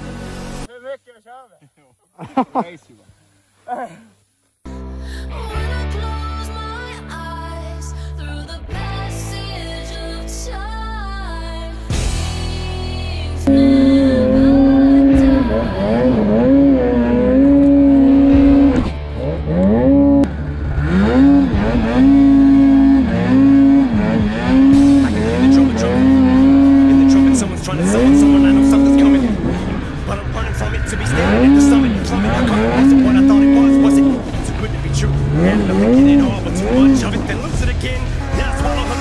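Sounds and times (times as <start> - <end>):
snowmobile engine revving: 13.4 - 39.0.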